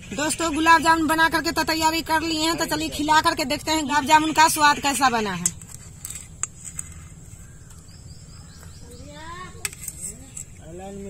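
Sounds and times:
light chirping: 0:03.1 - 0:11.0.

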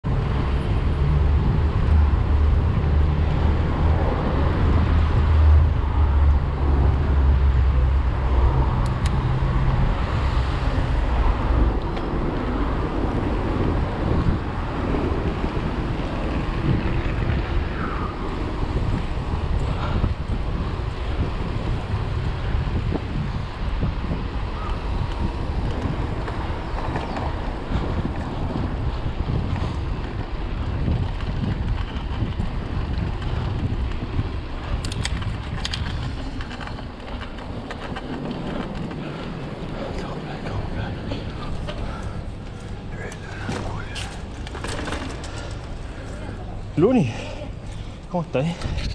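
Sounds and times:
car traffic: 0:00.0 - 0:48.9
wind buffeting microphone: 0:00.0 - 0:48.9.

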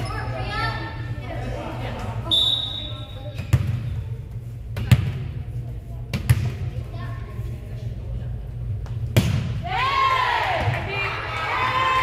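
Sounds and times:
referee's whistle blast: 0:02.3 - 0:03.2
volleyball bouncing on gym floor: 0:03.3 - 0:04.0, 0:04.8 - 0:05.4, 0:06.1 - 0:06.8, 0:09.0 - 0:09.7.

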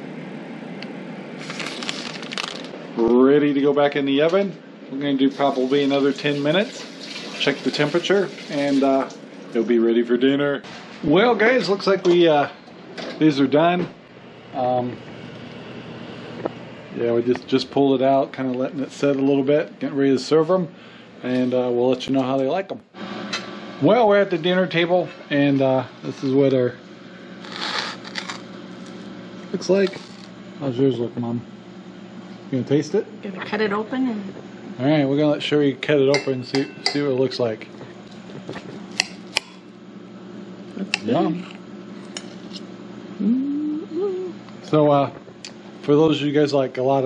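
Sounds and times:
low steady hum: 0:00.0 - 0:47.0
cutlery clinking on ceramic plate: 0:36.2 - 0:37.1.

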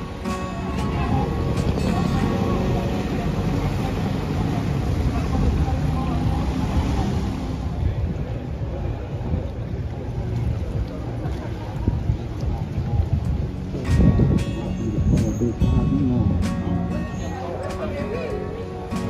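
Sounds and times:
music: 0:00.0 - 0:05.2, 0:09.9 - 0:19.0
motorboat engines rumbling: 0:00.0 - 0:19.0
voices: 0:00.0 - 0:19.0.

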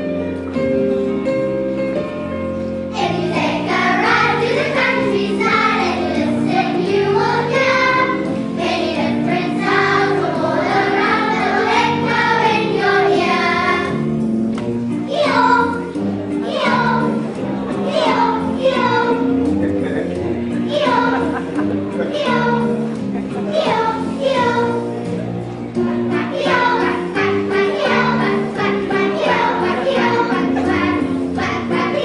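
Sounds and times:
instrumental accompaniment: 0:00.0 - 0:32.0
children's choir singing: 0:02.9 - 0:14.1, 0:15.1 - 0:19.6, 0:20.5 - 0:32.0.

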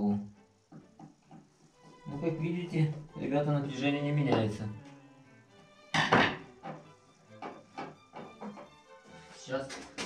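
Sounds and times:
faint background music: 0:00.0 - 0:10.0
objects thunking on wooden bench: 0:00.7 - 0:01.5, 0:05.9 - 0:08.8
tools knocking and clattering: 0:06.0 - 0:08.8.

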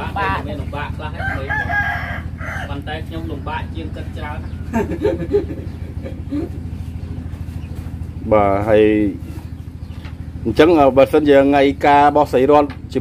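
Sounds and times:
small engine idling: 0:00.0 - 0:13.0
drawn-out call: 0:01.1 - 0:02.8
speech: 0:02.7 - 0:04.4, 0:08.2 - 0:09.2, 0:10.4 - 0:13.0.

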